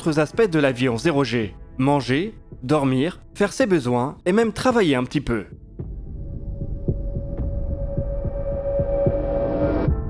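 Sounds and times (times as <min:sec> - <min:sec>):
low throbbing pulses: 0:05.6 - 0:10.0
steady tone: 0:06.0 - 0:10.0
rising swell: 0:06.3 - 0:10.0.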